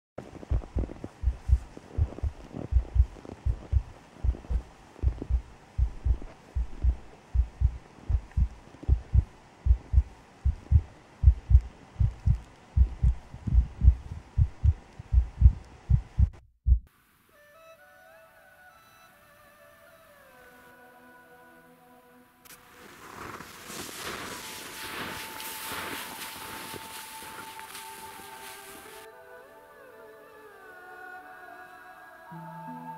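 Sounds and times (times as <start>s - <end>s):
low muffled thumps: 0.4s - 16.9s.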